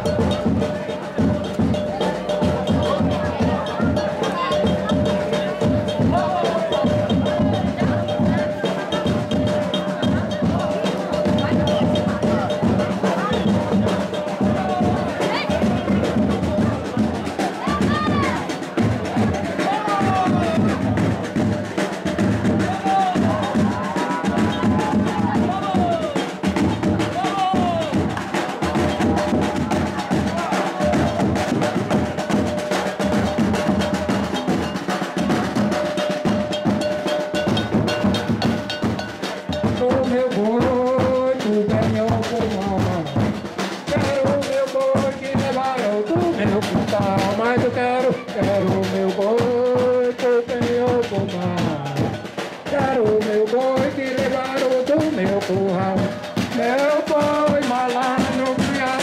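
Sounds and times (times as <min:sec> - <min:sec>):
bass drums beating: 0:00.0 - 0:59.0
snare drums beating: 0:00.0 - 0:59.0.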